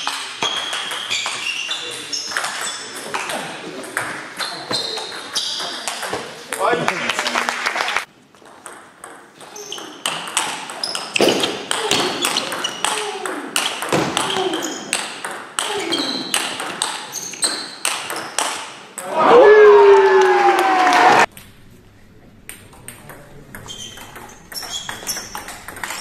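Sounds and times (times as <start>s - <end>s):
table tennis ball hits: 0.0s - 6.4s, 8.4s - 19.2s, 22.5s - 26.0s.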